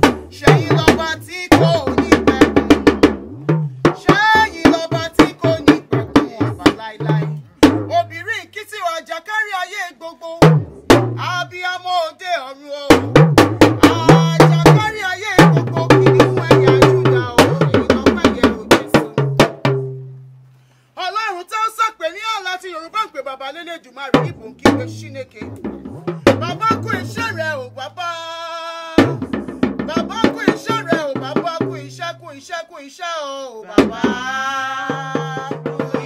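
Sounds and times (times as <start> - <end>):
drums: 0.0 - 8.1, 10.4 - 11.3, 12.9 - 20.0, 24.1 - 27.4, 29.0 - 31.8, 33.8 - 36.0
bass line: 0.0 - 8.3, 10.4 - 11.6, 12.9 - 20.4, 24.2 - 28.2, 29.0 - 32.0
woman singing: 33.6 - 36.0.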